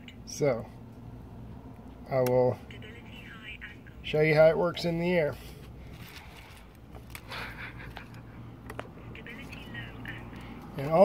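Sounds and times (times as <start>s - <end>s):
plastic rustling scrape: 5.4s - 7.2s.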